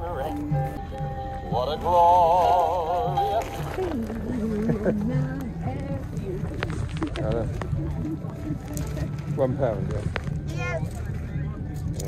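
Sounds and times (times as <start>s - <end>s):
background chatter: 0.0s - 12.0s
steady low rumble: 0.0s - 12.0s.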